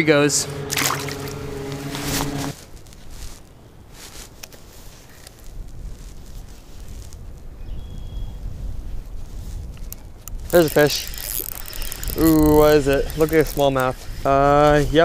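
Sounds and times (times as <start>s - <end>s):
low steady rumble: 0.0s - 2.6s
motorboat engine humming: 0.0s - 2.6s, 10.4s - 14.2s
faint rustling: 1.3s - 7.6s.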